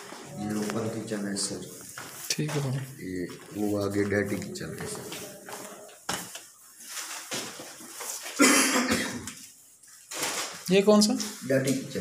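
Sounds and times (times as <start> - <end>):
loud cough: 8.4 - 9.3.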